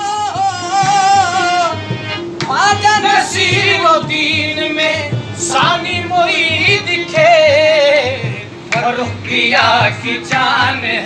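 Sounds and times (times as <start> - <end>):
harmonium: 0.0 - 11.0
men singing with vibrato: 0.0 - 11.0
steady drum beat: 0.0 - 11.0
hand-clapping: 8.7 - 9.0.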